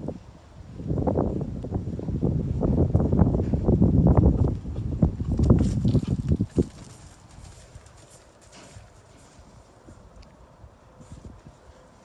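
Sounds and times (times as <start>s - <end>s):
horse hoofbeats on dirt: 3.0s - 9.5s.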